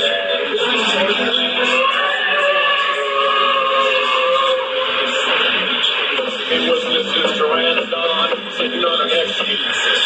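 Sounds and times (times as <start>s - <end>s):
radio-like music with voices: 0.0s - 10.0s.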